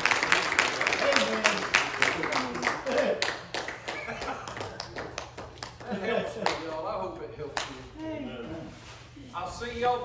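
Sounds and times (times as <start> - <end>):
people clapping: 0.0 - 8.1.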